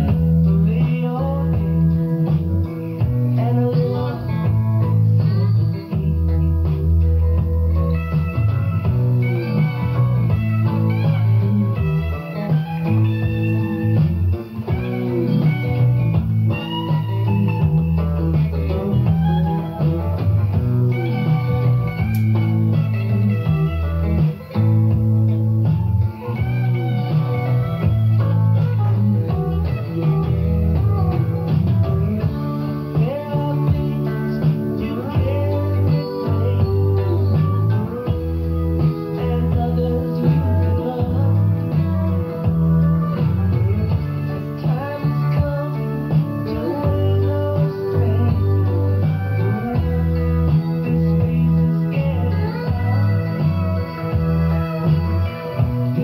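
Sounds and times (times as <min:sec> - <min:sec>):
instrumental rock song: 0:00.0 - 0:56.0.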